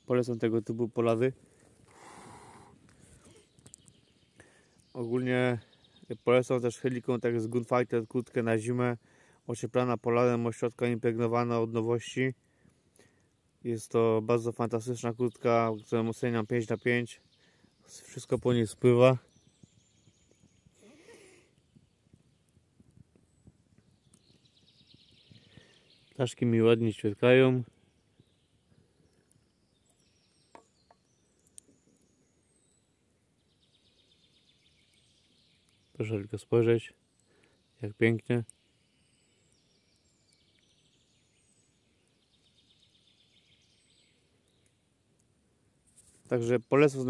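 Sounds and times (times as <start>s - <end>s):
man speaking: 0.1s - 1.4s
campfire ticking: 21.5s - 25.8s
soft rustle: 45.8s - 46.5s.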